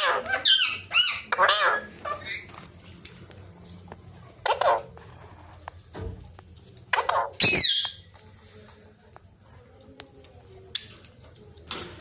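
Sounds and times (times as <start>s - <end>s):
parrot squawking: 0.0s - 2.4s, 6.9s - 8.0s.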